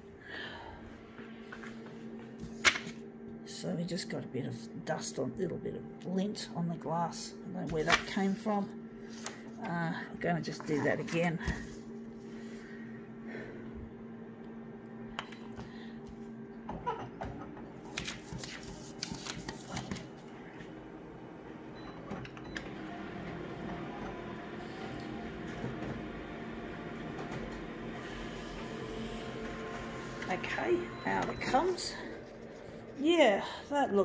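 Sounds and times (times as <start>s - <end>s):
copier humming: 0.0s - 34.0s
copier whirring while printing: 17.2s - 33.0s.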